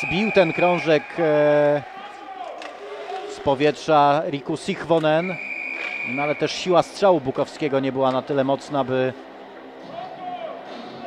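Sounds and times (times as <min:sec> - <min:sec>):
ice rink background noise: 0:00.0 - 0:11.0.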